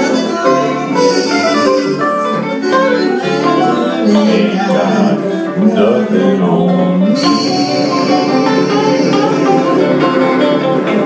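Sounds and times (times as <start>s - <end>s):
live band playing guitars: 0.0s - 11.0s.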